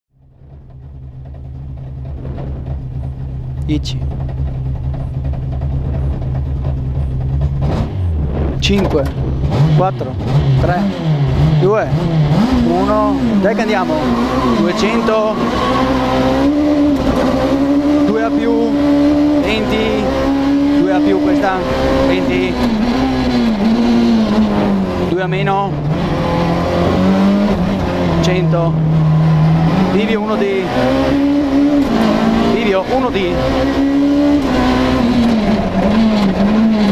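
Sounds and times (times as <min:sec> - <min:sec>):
rally car engine at low revs: 0:00.1 - 0:36.9.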